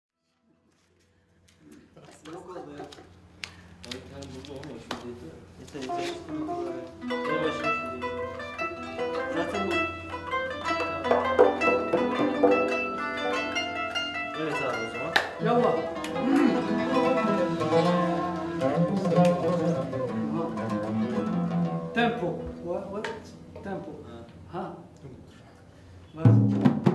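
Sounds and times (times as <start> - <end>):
plucked lute: 5.8 - 23.9
long-necked lute: 5.9 - 23.6
plucked zither runs: 6.4 - 23.6.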